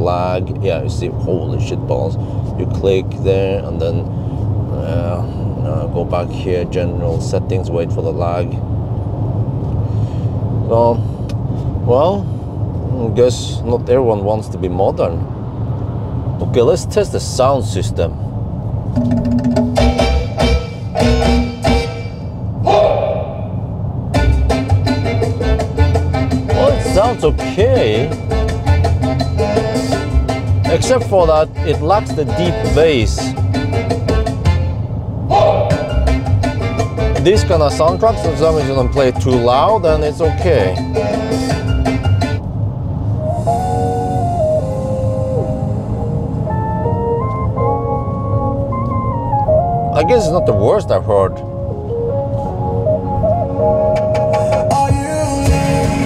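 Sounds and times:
low road noise: 0.0s - 56.0s
song on car stereo: 18.9s - 23.5s, 24.1s - 42.5s, 43.2s - 56.0s.

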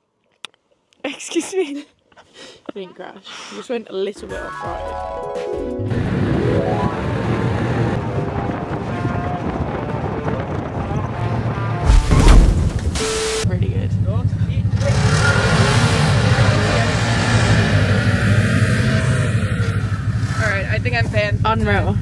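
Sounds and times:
snowmobile engines running: 5.9s - 12.1s, 12.8s - 22.0s
wind buffeting microphone: 6.0s - 13.0s.

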